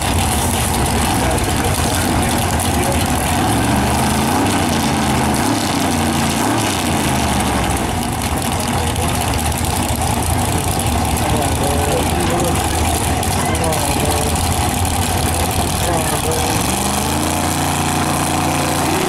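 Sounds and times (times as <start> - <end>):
car engines idling: 0.0 - 19.0.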